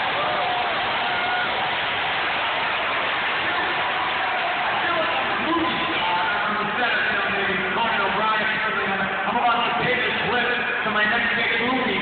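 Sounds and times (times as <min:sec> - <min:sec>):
crowd cheering and shouting: 0:00.0 - 0:12.0.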